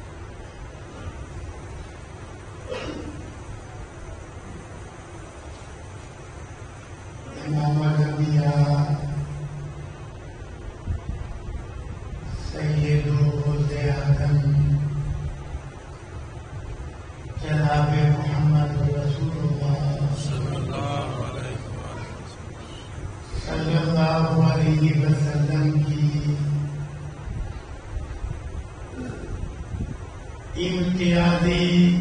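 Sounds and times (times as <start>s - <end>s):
man chanting: 12.3s - 15.0s, 17.4s - 26.8s, 30.6s - 32.0s.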